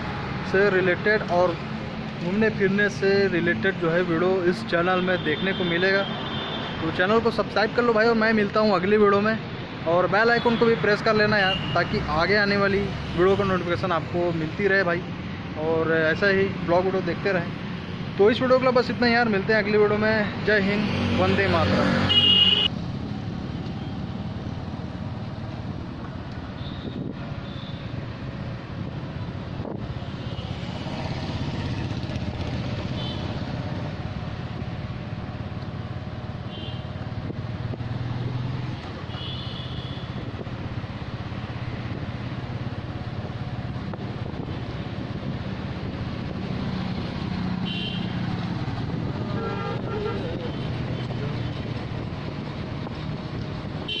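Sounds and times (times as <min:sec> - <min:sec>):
road noise: 0:00.0 - 0:54.0
vehicle horn toots: 0:22.1 - 0:22.7, 0:39.1 - 0:40.1, 0:47.6 - 0:48.2, 0:49.3 - 0:50.6.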